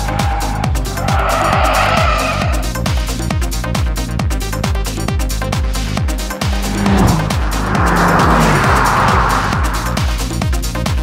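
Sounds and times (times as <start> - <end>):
car tyres squealing: 0.0 - 3.2, 6.3 - 10.4.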